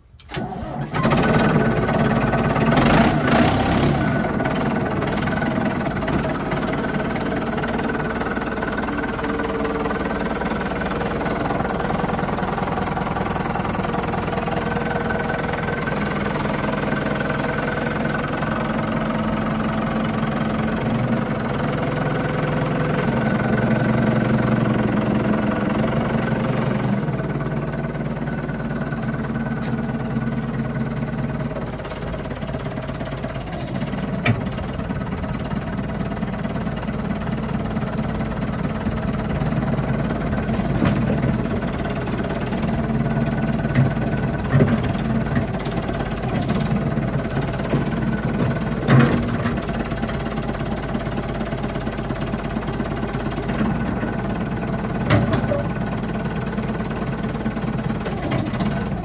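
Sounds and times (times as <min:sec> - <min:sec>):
backhoe loader engine running: 0:00.0 - 0:59.0.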